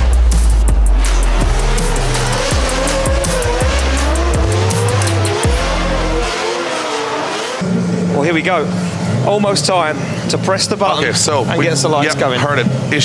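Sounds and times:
music with heavy bass: 0:00.0 - 0:07.6
car engines revving: 0:00.0 - 0:13.0
tyres squealing: 0:01.6 - 0:07.6.

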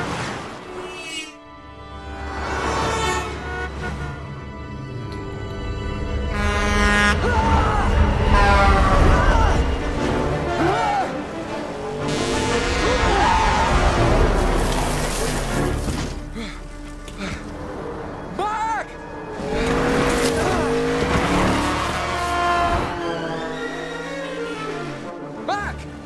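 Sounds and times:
dramatic music: 0:00.2 - 0:26.0
cars and trucks rushing past: 0:02.0 - 0:10.6
tires squealing: 0:18.0 - 0:25.1.

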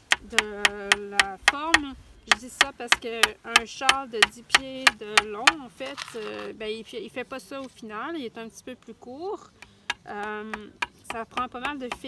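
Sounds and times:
hammer tapping a nail into wood: 0:00.0 - 0:05.6.

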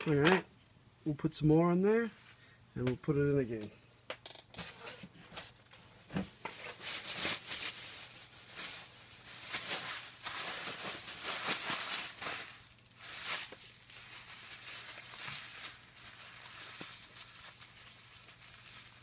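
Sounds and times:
plastic bags crinkling: 0:06.5 - 0:19.0.

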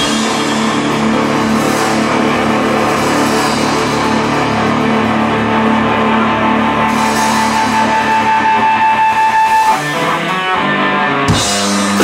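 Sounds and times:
distorted electric guitar chord: 0:00.0 - 0:12.0.

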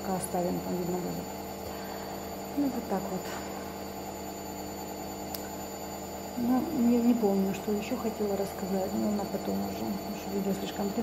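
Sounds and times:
washing machine humming: 0:00.0 - 0:11.0.

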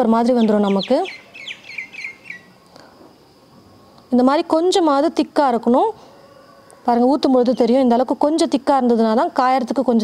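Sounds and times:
bird chirping: 0:00.0 - 0:02.9
faint outdoor background: 0:00.0 - 0:10.0.

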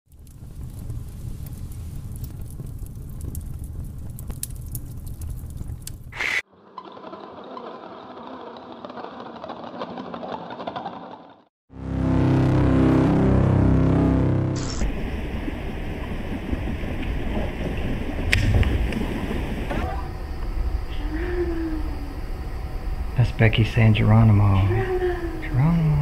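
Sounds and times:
low rumble with crackles: 0:00.1 - 0:06.2, 0:12.3 - 0:26.0
deep drone: 0:11.7 - 0:26.0.

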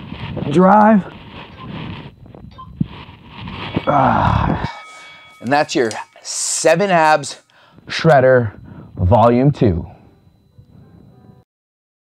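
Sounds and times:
man breathing hard: 0:03.9 - 0:05.3, 0:07.5 - 0:07.9, 0:08.6 - 0:09.0.

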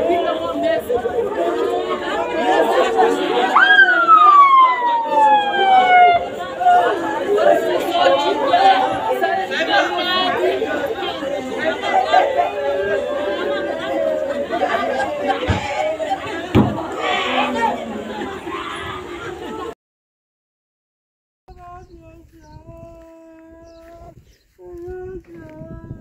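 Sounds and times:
crowd of women wailing: 0:01.4 - 0:19.7
long high cry falling in pitch: 0:03.5 - 0:06.9.

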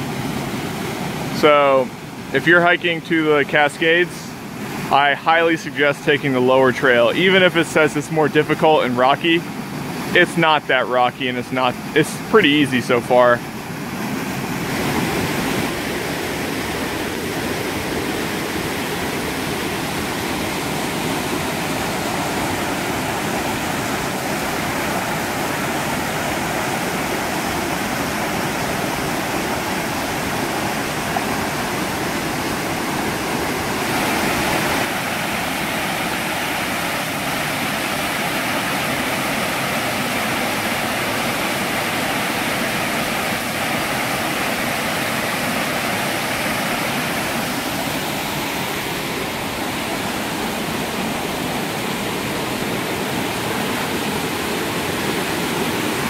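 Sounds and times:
water rushing over rocks: 0:00.0 - 0:56.0.

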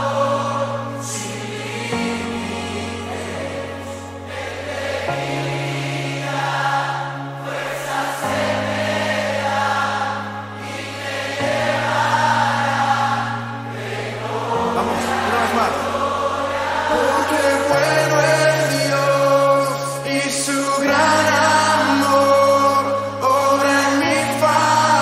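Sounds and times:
voices singing worship song: 0:00.0 - 0:25.0.

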